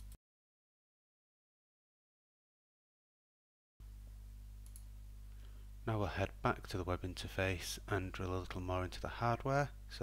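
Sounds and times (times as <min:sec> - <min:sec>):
low room hum: 0:03.8 - 0:10.0
man speaking: 0:05.8 - 0:10.0.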